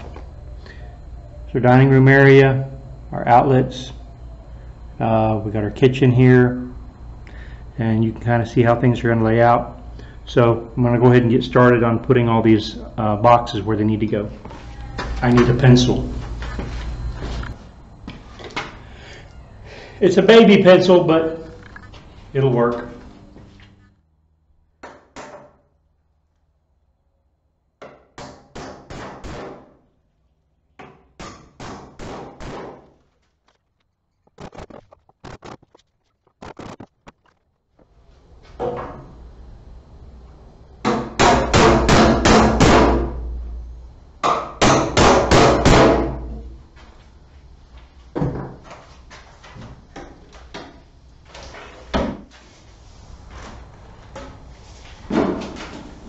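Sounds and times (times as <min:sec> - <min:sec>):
hammer nailing into wood: 0:24.8 - 0:25.6, 0:27.8 - 0:29.8, 0:30.8 - 0:32.9, 0:40.8 - 0:43.1, 0:44.2 - 0:46.2.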